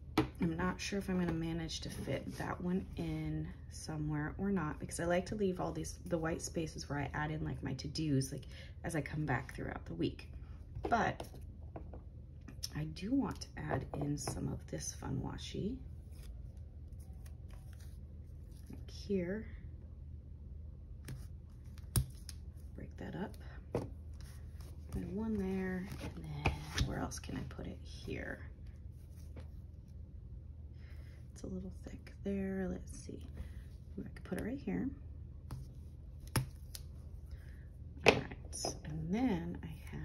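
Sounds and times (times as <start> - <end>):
low room hum: 0.0 - 40.0.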